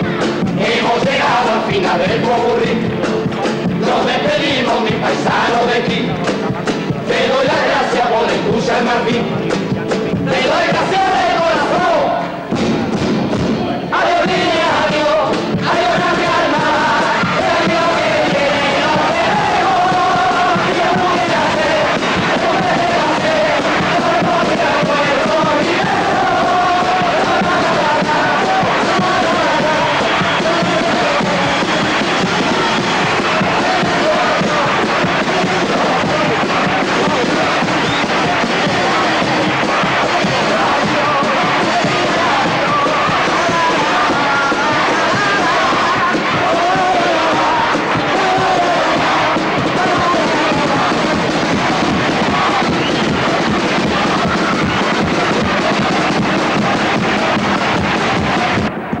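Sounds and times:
bass drum beat: 0:00.0 - 0:59.0
live group music: 0:00.0 - 0:59.0.

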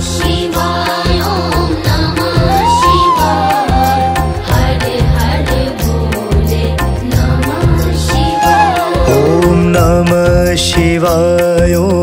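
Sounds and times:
devotional instrumental music: 0:00.0 - 0:12.0.

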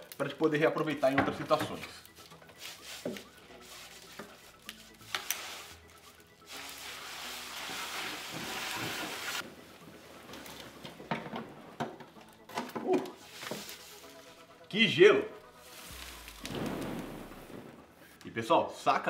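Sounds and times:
hiss of pouring liquid: 0:06.5 - 0:09.4.

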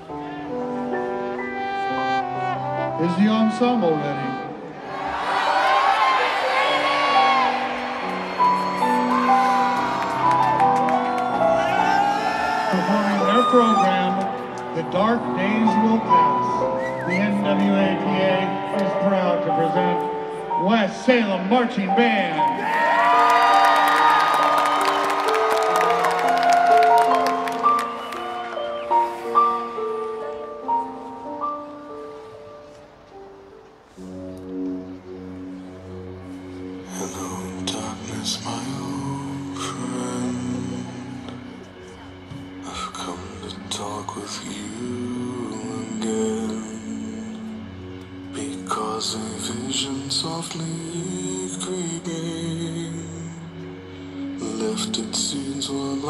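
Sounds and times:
marching band brass chords: 0:00.0 - 0:22.2
crowd applause and cheering: 0:04.8 - 0:14.7, 0:22.4 - 0:29.8.

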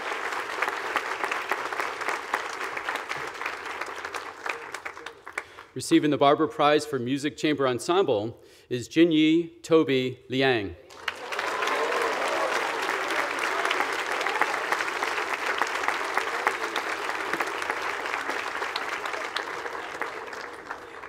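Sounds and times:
audience applauding: 0:00.0 - 0:05.8, 0:10.9 - 0:21.0.

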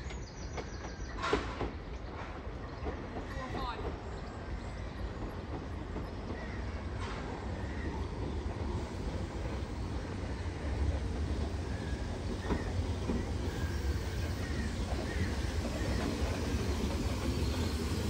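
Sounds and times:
electric train low rumble: 0:00.0 - 0:18.0.

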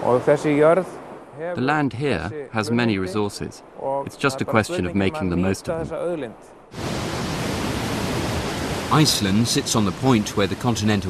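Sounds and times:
geyser hissing: 0:06.7 - 0:11.0.

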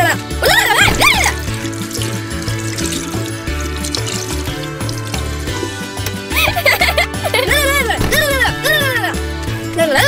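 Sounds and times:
background music with bass line: 0:00.0 - 0:10.0
tap water filling bathtub: 0:00.7 - 0:06.2.

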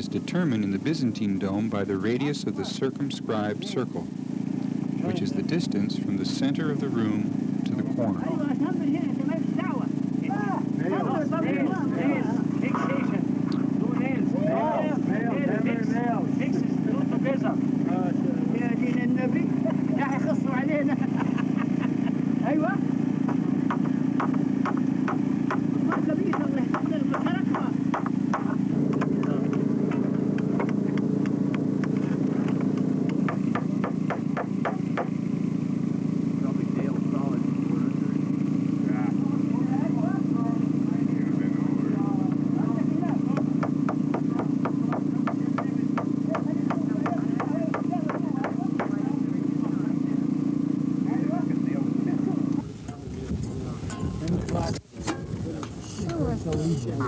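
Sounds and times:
steady low hum: 0:00.0 - 0:57.0
hammer tapping a nail into wood: 0:23.3 - 0:35.1, 0:43.3 - 0:49.0.

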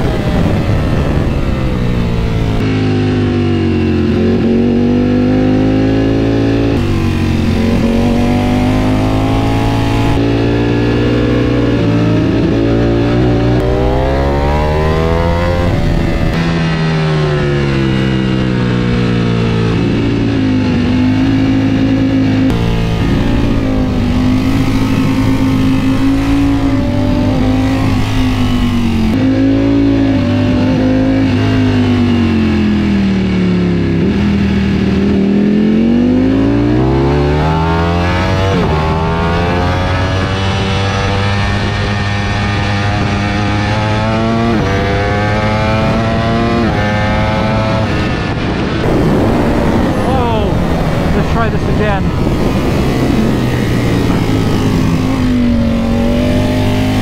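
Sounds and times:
wind rushing: 0:00.0 - 0:02.7, 0:05.8 - 0:17.0, 0:19.4 - 0:29.3, 0:41.1 - 0:57.0
motorcycle engine revving: 0:00.0 - 0:57.0.

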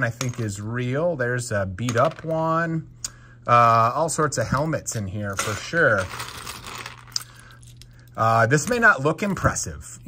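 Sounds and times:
plastic pieces clattering: 0:05.4 - 0:07.8.

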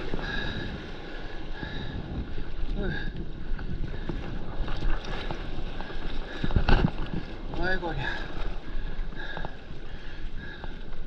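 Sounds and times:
water rushing and splashing: 0:00.0 - 0:11.0
wind buffeting microphone: 0:00.0 - 0:11.0.

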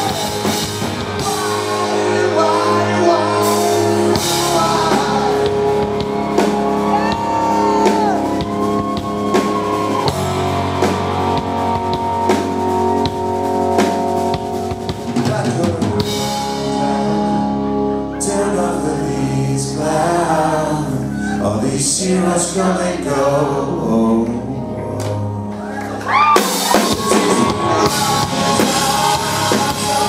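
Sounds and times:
person singing: 0:00.0 - 0:14.0, 0:15.1 - 0:25.3, 0:26.4 - 0:30.0
drums: 0:00.0 - 0:18.6, 0:24.9 - 0:30.0
electric guitar long notes: 0:00.0 - 0:30.0.

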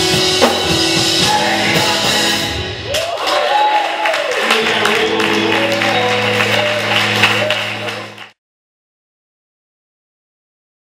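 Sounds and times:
man singing: 0:00.9 - 0:02.7, 0:04.4 - 0:08.2
low keyboard chord: 0:04.4 - 0:08.4.

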